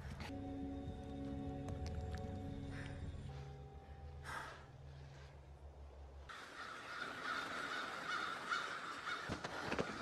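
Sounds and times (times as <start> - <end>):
crows cawing: 6.3 - 10.0.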